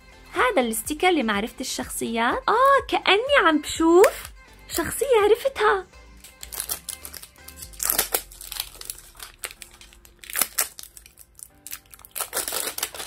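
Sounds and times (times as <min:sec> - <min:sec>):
quiet background music: 0:00.0 - 0:13.0
plastic wrapping crinkling: 0:06.2 - 0:13.0.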